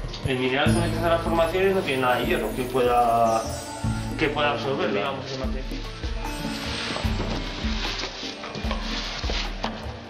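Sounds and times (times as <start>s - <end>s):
music with bass and beat: 5.4s - 10.0s.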